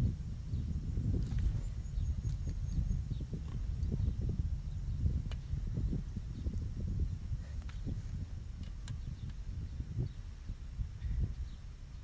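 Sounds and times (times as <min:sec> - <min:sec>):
wind buffeting microphone: 0:00.0 - 0:12.0
faint light ticks: 0:08.6 - 0:09.4.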